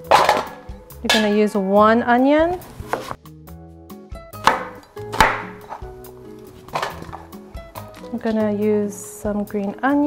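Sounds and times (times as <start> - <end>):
soft background music: 0.0 - 10.0
knife chopping on wooden board: 4.4 - 5.9.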